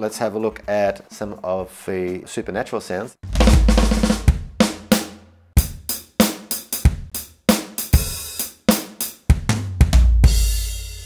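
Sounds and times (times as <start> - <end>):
kick drum: 3.2 - 4.9, 6.9 - 7.2.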